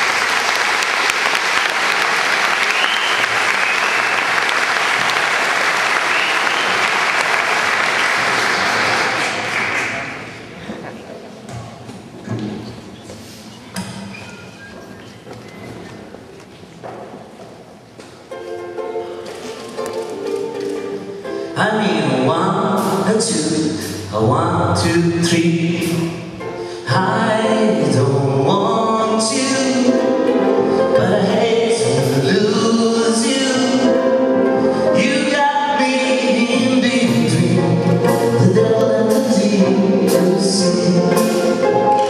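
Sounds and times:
audience applauding: 0.0 - 10.8
quiet stage sounds: 0.0 - 42.0
whistling from audience: 2.5 - 5.2, 5.8 - 7.2
pitched instrument notes: 18.2 - 42.0.

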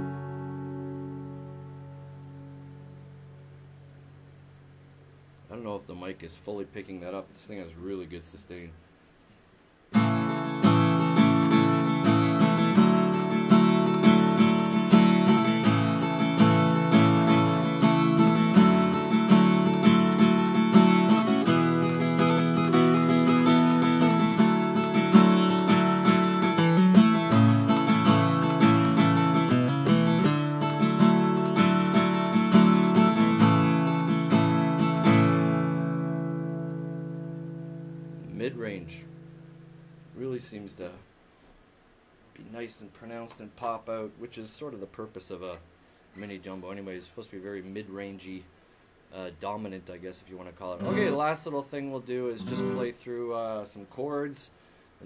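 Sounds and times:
acoustic guitar chords: 0.0 - 7.2, 9.9 - 41.0, 50.6 - 53.5.

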